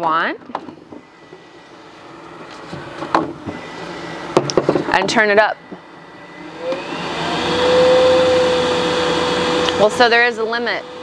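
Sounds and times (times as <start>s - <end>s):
electric air blower humming: 0.8s - 11.0s.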